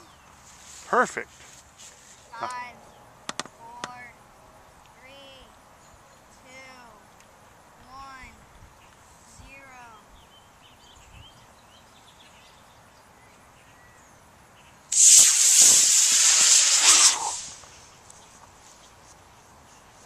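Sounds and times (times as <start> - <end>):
rocket motor hissing: 14.9 - 17.8.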